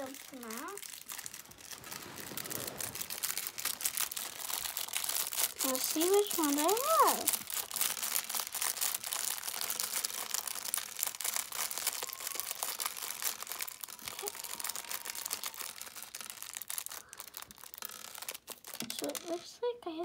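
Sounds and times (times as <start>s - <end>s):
small plastic tiles shaking: 0.0s - 19.5s
plastic bag crinkling: 0.0s - 19.7s.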